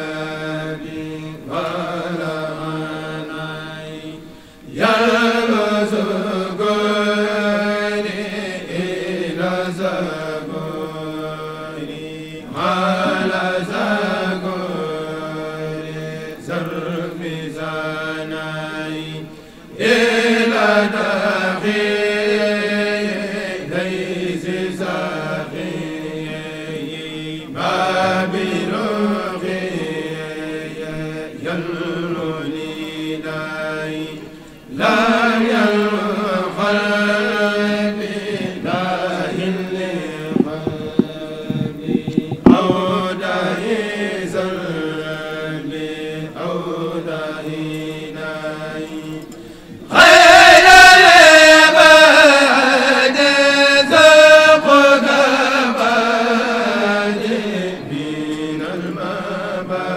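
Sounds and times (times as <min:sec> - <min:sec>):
men chanting into microphones: 0:00.0 - 0:59.9.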